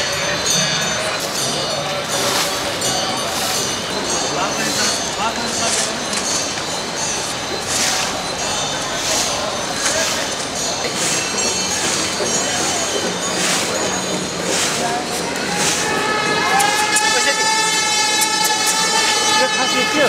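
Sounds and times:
people's voices: 0:00.0 - 0:20.0.

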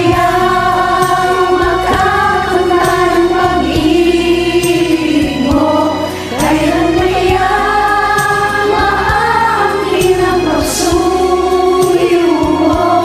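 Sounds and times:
backing music: 0:00.0 - 0:13.0
group of people singing: 0:00.0 - 0:13.0.

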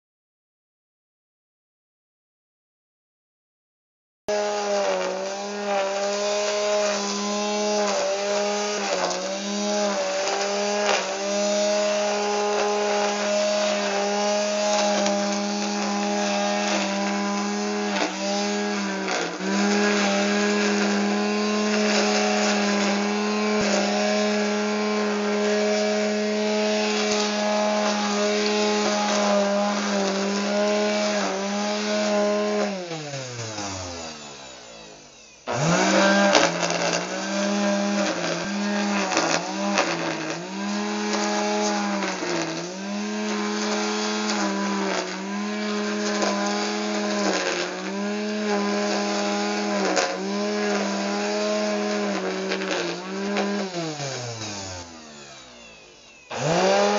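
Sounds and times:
string trimmer motor whining: 0:04.3 - 0:56.9.

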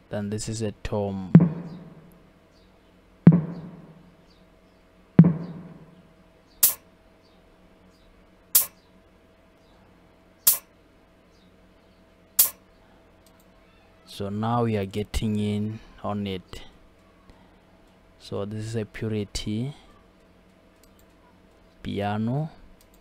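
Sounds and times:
tom drum hits: 0:01.4 - 0:02.1, 0:03.3 - 0:04.1, 0:05.2 - 0:06.0
closed hi-hat ticking: 0:08.6 - 0:08.8, 0:10.5 - 0:10.7, 0:12.4 - 0:12.6.

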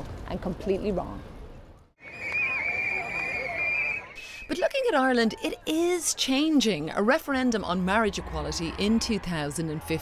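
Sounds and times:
plastic whistle long high note: 0:02.0 - 0:04.2.

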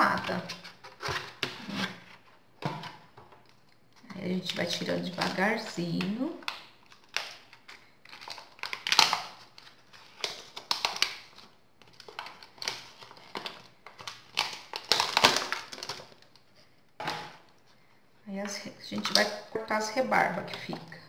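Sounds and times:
plastic mould crackling: 0:00.0 - 0:21.0.

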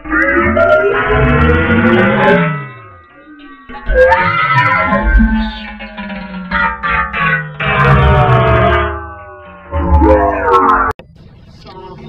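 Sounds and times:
pitch-warped echoing voice: 0:00.0 - 0:11.0.

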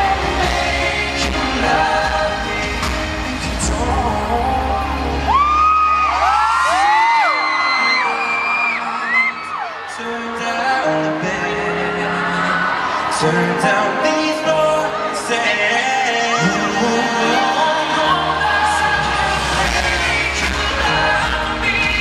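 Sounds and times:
live pop ballad with band: 0:00.0 - 0:22.0
audience screaming: 0:04.9 - 0:22.0.

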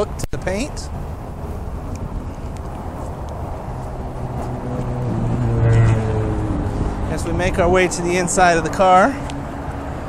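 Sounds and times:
traffic rumble: 0:00.0 - 0:10.0
vehicle engine hum: 0:00.0 - 0:10.0.

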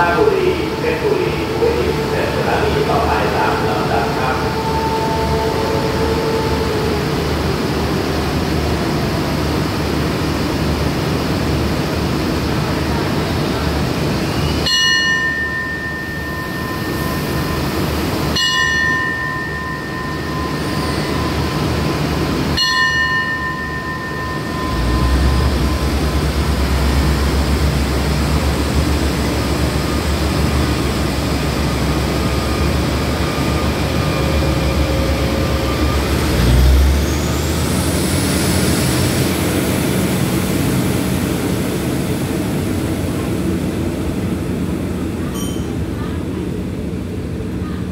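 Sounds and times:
train diesel engines rumbling: 0:00.0 - 0:47.9
bell ringing: 0:14.7 - 0:21.9, 0:22.6 - 0:26.9, 0:45.3 - 0:45.8.

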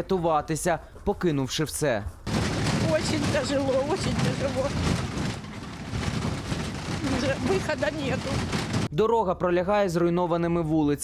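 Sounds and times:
loud dense rumbling: 0:02.3 - 0:08.9.

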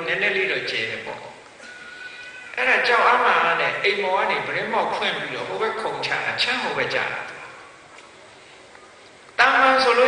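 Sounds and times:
man preaching over microphone: 0:00.0 - 0:01.4, 0:02.6 - 0:07.6, 0:09.4 - 0:10.0.

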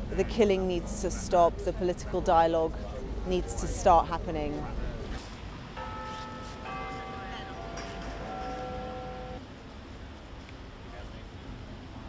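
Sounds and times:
low street rumble: 0:00.0 - 0:12.0
bells chiming: 0:05.8 - 0:09.4.

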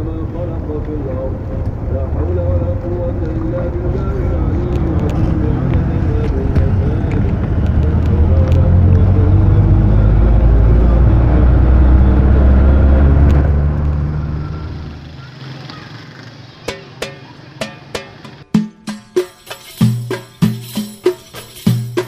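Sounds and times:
faint voices: 0:00.0 - 0:18.4
vehicle road rumble: 0:00.0 - 0:18.4.

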